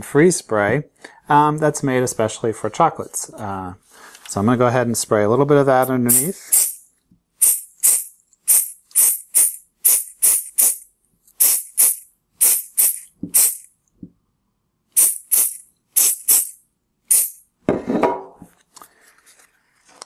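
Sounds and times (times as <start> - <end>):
aerosol spray hissing: 6.1 - 6.8, 7.4 - 10.8, 11.4 - 13.6, 15.0 - 17.4.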